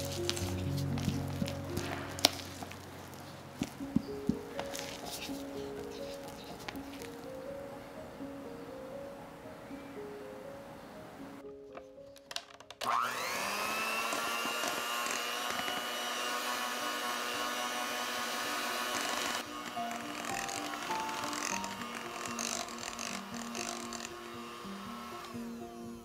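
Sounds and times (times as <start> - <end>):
electric hand mixer whining: 12.8 - 26.0.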